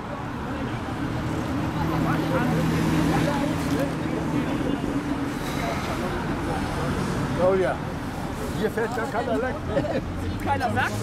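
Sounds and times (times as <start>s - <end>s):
road traffic passing: 0.0s - 11.0s.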